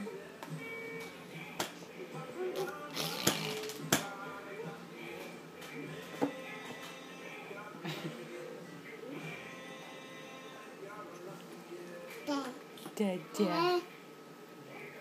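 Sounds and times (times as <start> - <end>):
background music: 0.0 - 15.0
baby growling and babbling: 13.4 - 13.9.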